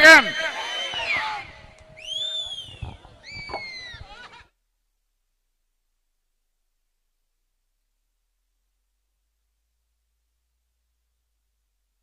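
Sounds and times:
high-pitched whistles: 0.0 - 4.1
crowd noise: 0.0 - 4.5.

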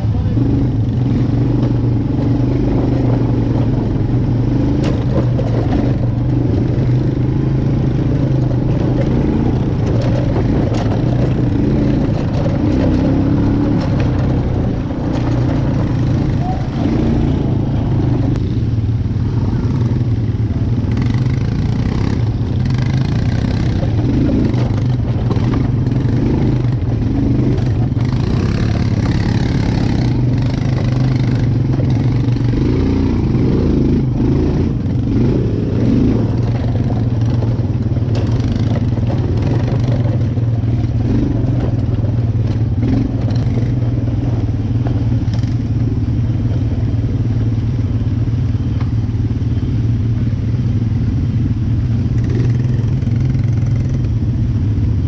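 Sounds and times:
atv engine running: 0.0 - 55.0
knocks and rattles from bumps: 1.6 - 18.4, 21.0 - 45.7.

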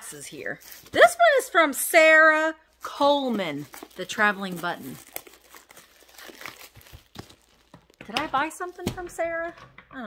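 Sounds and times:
paper and packaging crinkling: 0.2 - 1.4, 2.6 - 9.1.

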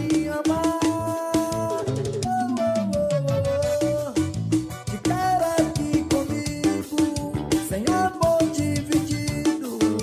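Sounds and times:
backing track with drums and guitar: 0.0 - 10.0
man singing long notes: 0.0 - 10.0.

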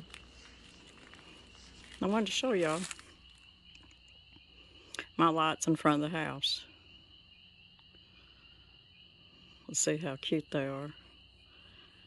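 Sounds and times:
insects chorus: 0.0 - 12.0.

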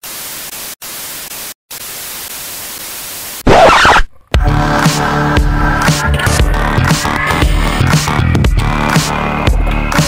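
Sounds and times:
television static hiss: 0.0 - 4.1.

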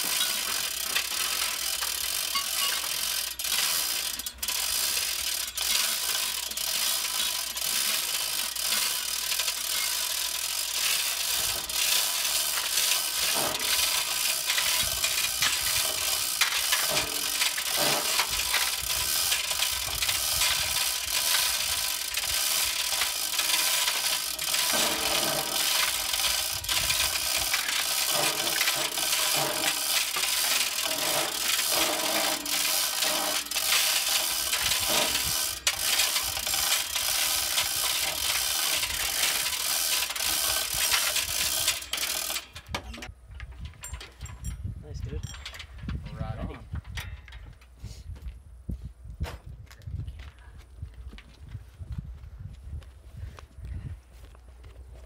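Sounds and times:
chain hoist ratcheting clicks: 0.0 - 47.7.

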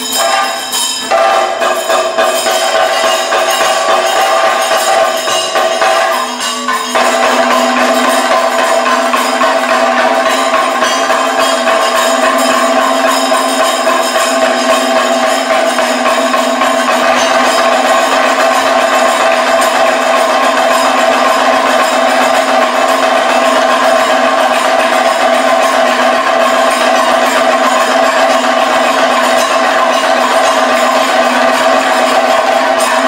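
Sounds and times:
drums played loudly: 0.0 - 33.0
steady ringing tones: 0.0 - 33.0.

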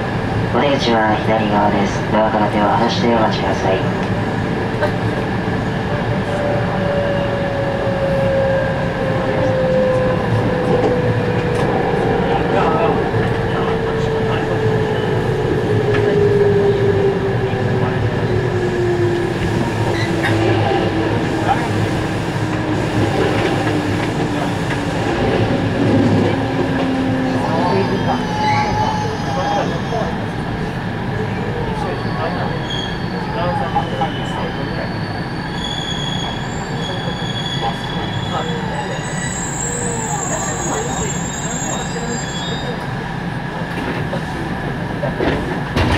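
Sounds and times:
train drive whine: 0.0 - 45.9
train wheels on rails: 15.0 - 28.2, 39.1 - 45.9.

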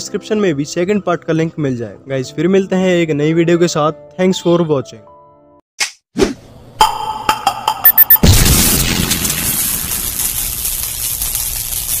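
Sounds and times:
hiss: 9.4 - 12.0.

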